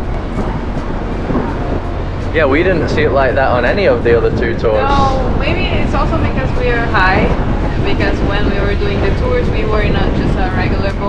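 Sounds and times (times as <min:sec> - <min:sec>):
boat engine droning: 0:00.0 - 0:11.0
rushing wind and water: 0:00.0 - 0:11.0.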